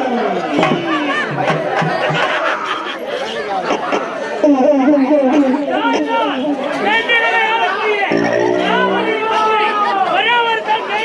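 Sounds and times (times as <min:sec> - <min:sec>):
performers' loud overlapping voices: 0:00.0 - 0:11.0.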